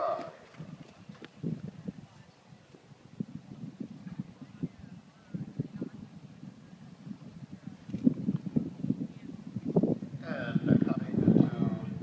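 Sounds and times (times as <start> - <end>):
hooves walking on sand: 0.0 - 9.9.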